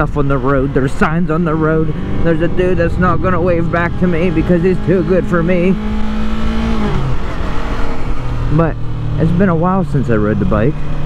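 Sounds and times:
wind rumble on microphone: 0:00.0 - 0:08.4
motorcycle engine running: 0:00.0 - 0:11.0.

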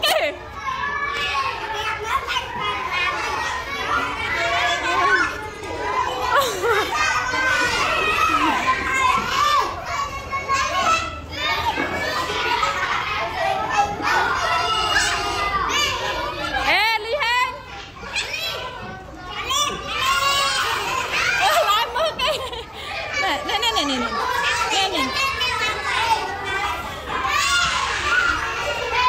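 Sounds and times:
children chattering: 0:00.0 - 0:29.0.

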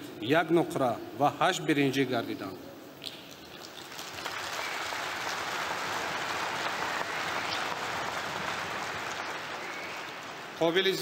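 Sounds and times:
audience applauding: 0:03.6 - 0:11.0.

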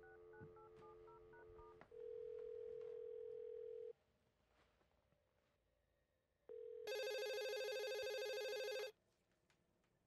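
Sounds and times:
telephone dial tone: 0:00.0 - 0:03.9, 0:06.5 - 0:08.9.

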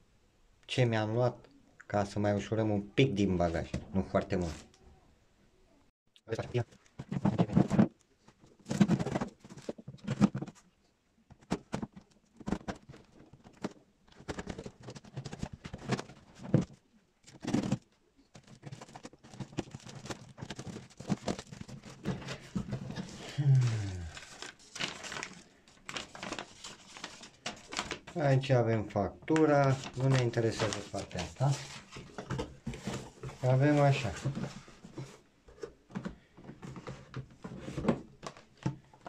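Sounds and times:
paper rustling: 0:11.4 - 0:28.3, 0:29.3 - 0:35.2.

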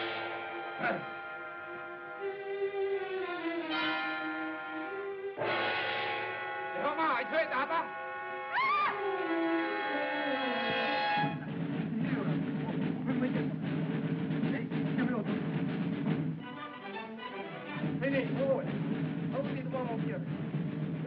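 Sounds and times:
music with drums: 0:00.0 - 0:01.3, 0:10.7 - 0:21.0
man shouting: 0:00.8 - 0:01.2, 0:06.8 - 0:09.0.

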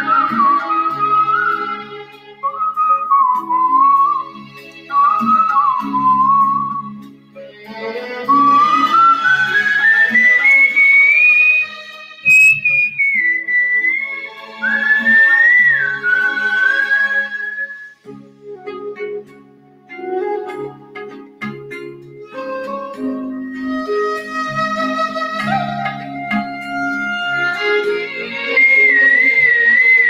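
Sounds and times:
person whistling a melody: 0:00.0 - 0:01.8, 0:02.4 - 0:07.0, 0:08.3 - 0:18.8, 0:22.3 - 0:24.3, 0:28.5 - 0:30.0
instrumental backing track: 0:00.0 - 0:30.0.

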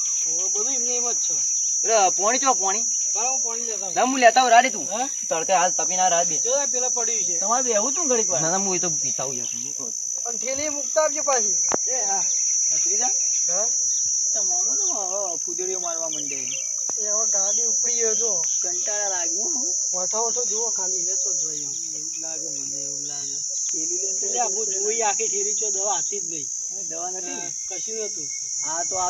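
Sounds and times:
insects chirring: 0:00.0 - 0:29.0
men talking: 0:00.2 - 0:29.0.

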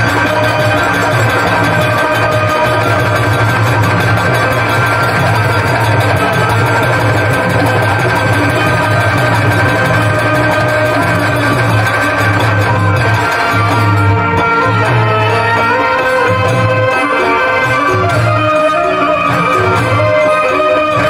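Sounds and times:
live band playing: 0:00.0 - 0:21.0.

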